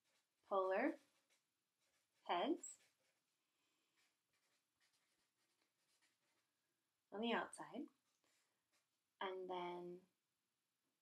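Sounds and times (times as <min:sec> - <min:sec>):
marker writing on paper: 0:00.0 - 0:06.5, 0:08.0 - 0:08.9.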